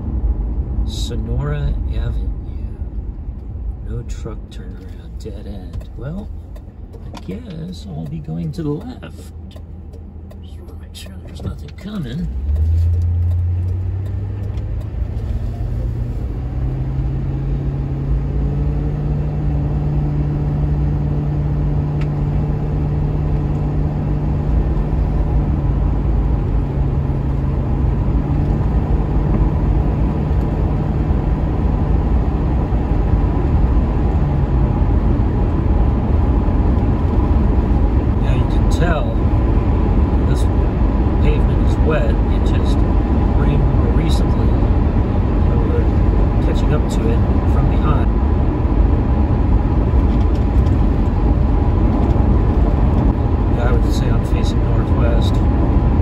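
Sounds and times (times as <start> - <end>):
car engine accelerating: 0.0 - 56.0
tyres humming on wet road: 0.0 - 56.0.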